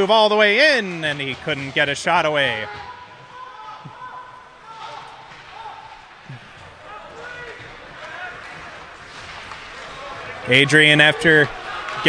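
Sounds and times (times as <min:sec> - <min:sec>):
echoing voices: 0:00.0 - 0:12.0.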